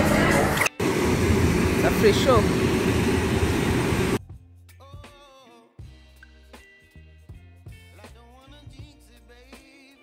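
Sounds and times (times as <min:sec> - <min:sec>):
loud steady rushing noise: 0:00.0 - 0:04.2.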